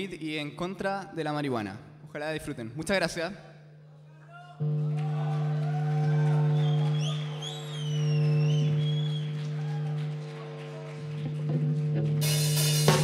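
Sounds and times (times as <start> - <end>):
low droning note: 4.6 - 13.0.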